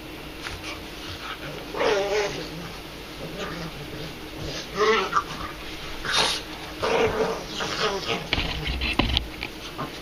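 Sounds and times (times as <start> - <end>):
dog growling: 1.2 - 8.9
dog whining cry: 1.5 - 8.4.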